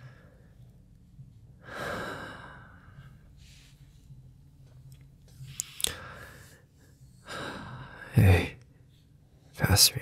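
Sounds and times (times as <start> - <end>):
soft breath: 0.0 - 8.1.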